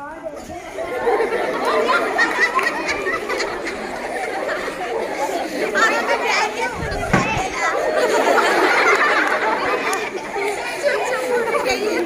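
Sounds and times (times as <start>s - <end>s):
girls chattering: 0.0s - 12.0s.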